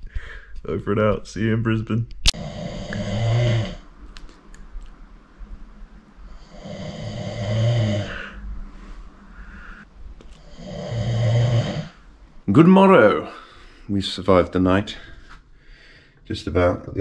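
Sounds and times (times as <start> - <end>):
person snoring: 2.4 - 3.9, 6.2 - 8.6, 9.2 - 12.1.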